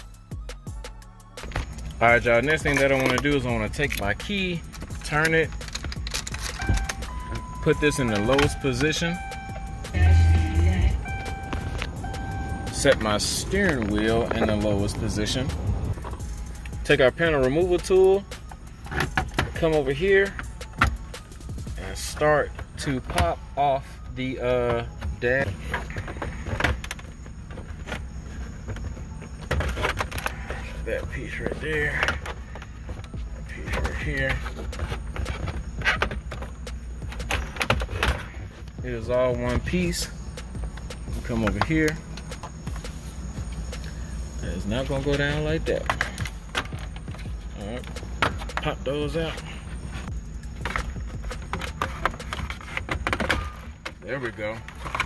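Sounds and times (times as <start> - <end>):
low steady rumble: 1.5 - 18.9, 19.5 - 55.0
steady low hum: 1.6 - 55.0.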